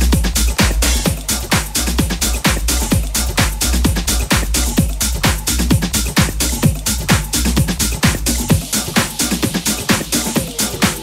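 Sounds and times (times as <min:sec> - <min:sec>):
kick drum: 0:00.0 - 0:11.0
techno dance music: 0:00.0 - 0:11.0.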